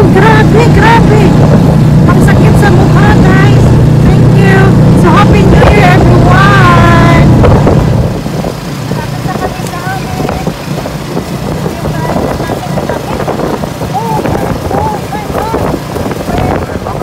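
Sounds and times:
motor tricycle engine: 0.0 - 17.0
wind buffeting microphone: 0.0 - 17.0.

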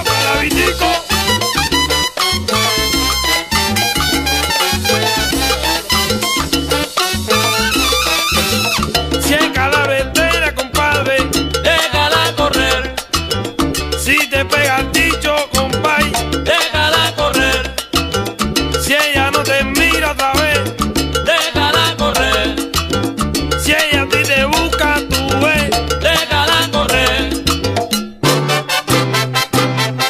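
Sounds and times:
salsa band playing: 0.0 - 30.0.

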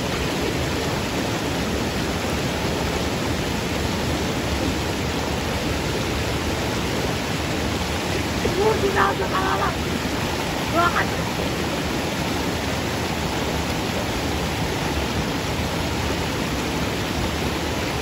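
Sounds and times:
small waterfall rushing: 0.0 - 18.0.

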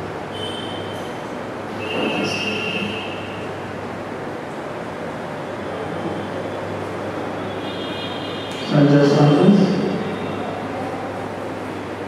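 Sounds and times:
ventilation hum: 0.0 - 12.0.

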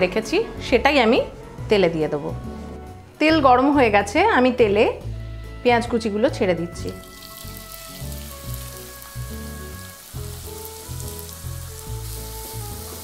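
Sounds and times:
onions sizzling in hot oil: 6.7 - 13.0.

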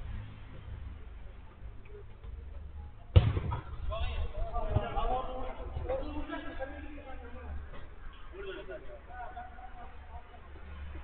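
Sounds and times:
football being kicked: 3.1 - 3.8.

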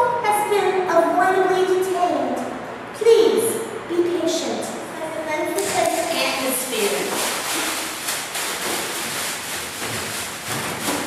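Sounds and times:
plastic garbage bag rustling: 5.6 - 11.0.

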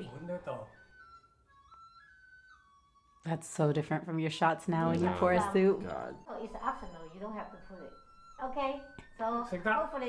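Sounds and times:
soft flute melody: 0.0 - 3.4, 4.0 - 10.0.

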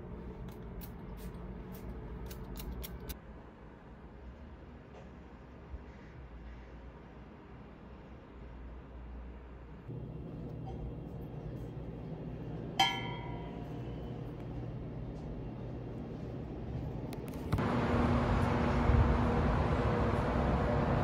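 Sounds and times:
street traffic noise: 0.0 - 21.0
low room hum: 7.9 - 21.0.

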